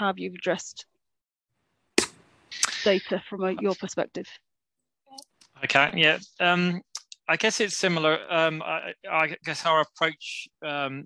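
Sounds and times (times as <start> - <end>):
man talking: 5.6 - 11.0.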